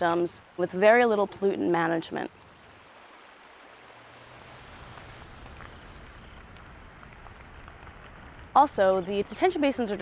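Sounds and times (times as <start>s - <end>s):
creek running over rocks: 0.0s - 10.0s.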